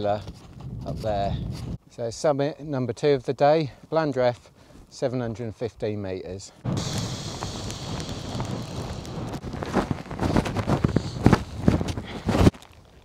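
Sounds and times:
strong wind blasting microphone: 0:00.2 - 0:01.8, 0:06.7 - 0:12.5
heavy thumps: 0:06.6 - 0:11.9.

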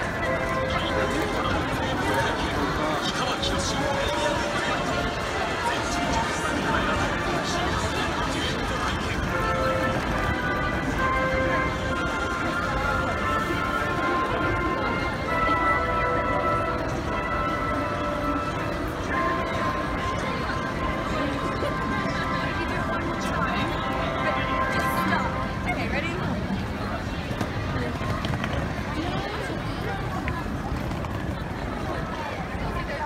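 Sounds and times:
many voices: 0:00.0 - 0:33.0.

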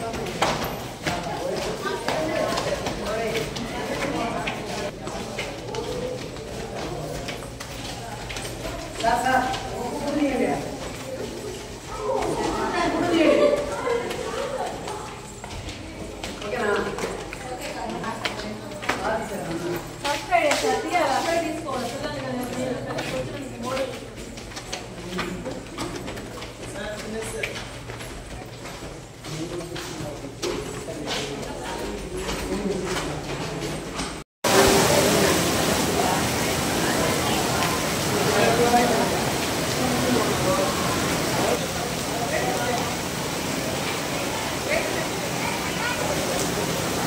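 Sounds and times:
voices chattering: 0:00.0 - 0:18.8, 0:34.5 - 0:47.0
footsteps on tiled floor: 0:00.0 - 0:47.0
children murmuring: 0:10.6 - 0:16.3, 0:34.6 - 0:47.0
steady rain: 0:34.4 - 0:47.0
crowd voices: 0:34.5 - 0:47.0.

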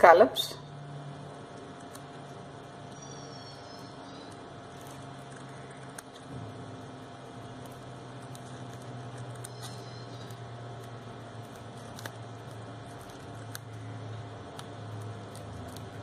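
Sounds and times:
steady low hum: 0:00.0 - 0:16.0
scissors snipping paper: 0:07.5 - 0:16.0.

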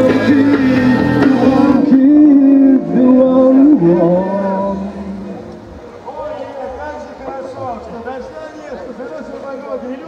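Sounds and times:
indistinct voices talking: 0:00.0 - 0:10.0.

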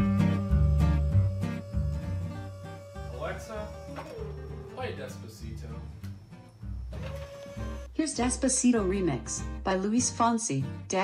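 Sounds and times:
recliner motor whirring: 0:00.0 - 0:05.2, 0:06.0 - 0:08.0
background music: 0:00.0 - 0:11.0.

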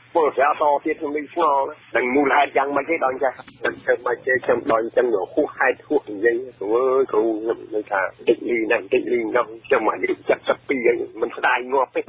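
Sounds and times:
faint steady hum: 0:00.0 - 0:12.0
person speaking on radio: 0:00.2 - 0:12.0.

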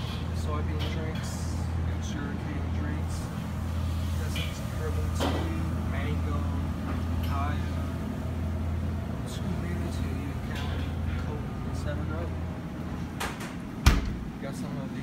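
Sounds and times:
refrigeration unit humming: 0:00.0 - 0:15.0.

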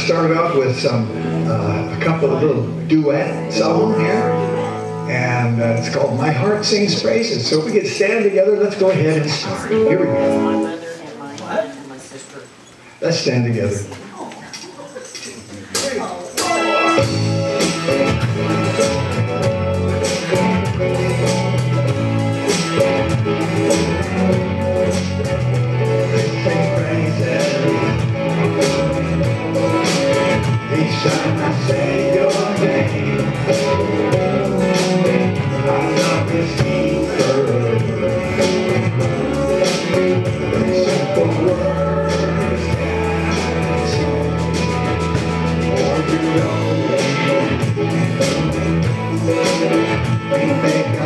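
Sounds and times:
electric guitar strumming: 0:00.0 - 0:11.0, 0:15.8 - 0:51.0
sustained keyboard notes: 0:00.0 - 0:11.3
drums keeping a steady beat: 0:13.8 - 0:51.0.

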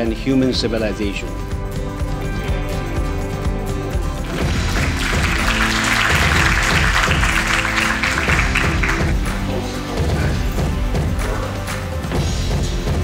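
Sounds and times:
background music: 0:00.0 - 0:13.0
audience applauding: 0:04.2 - 0:09.6.

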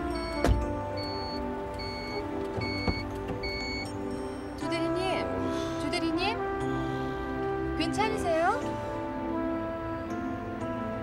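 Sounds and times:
car warning chime beeping: 0:00.0 - 0:05.1
background music: 0:00.0 - 0:11.0.

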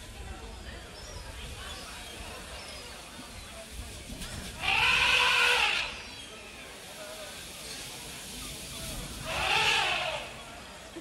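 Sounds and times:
murmur of voices: 0:00.0 - 0:11.0
loud animal call: 0:04.6 - 0:06.0, 0:09.2 - 0:10.4.

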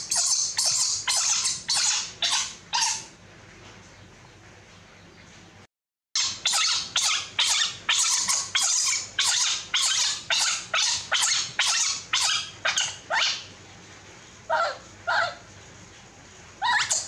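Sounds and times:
baby monkey shrill crying: 0:00.0 - 0:03.1, 0:06.2 - 0:13.5, 0:14.5 - 0:15.4, 0:16.6 - 0:17.0.

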